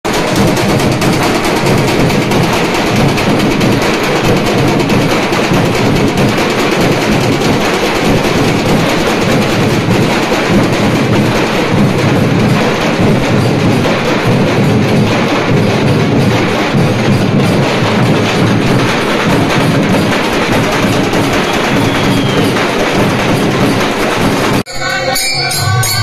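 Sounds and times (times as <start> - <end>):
drums beaten with sticks: 0.0 - 26.0.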